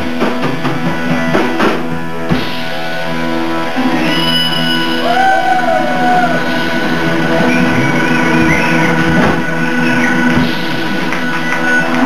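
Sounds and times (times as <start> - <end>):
drums: 0.0 - 12.0
electric guitars: 0.0 - 12.0.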